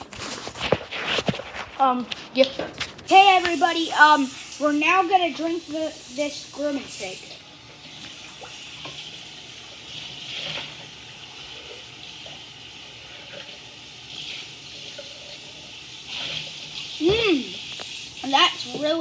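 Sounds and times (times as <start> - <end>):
person speaking: 1.7 - 7.4, 18.2 - 19.0
kitchen tap running: 3.0 - 19.0.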